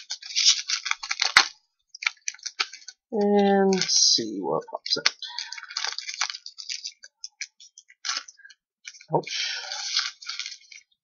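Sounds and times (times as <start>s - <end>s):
foil wrapper crinkling: 0.0s - 11.0s.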